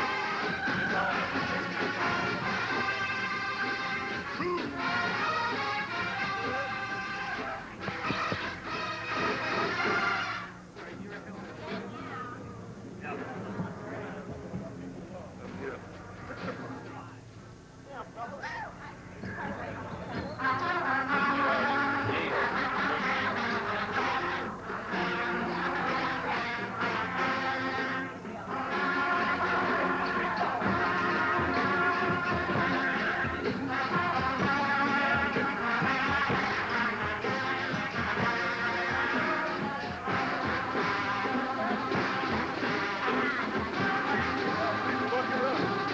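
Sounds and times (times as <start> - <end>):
marching band brass chords: 0.0 - 17.0, 19.0 - 45.9.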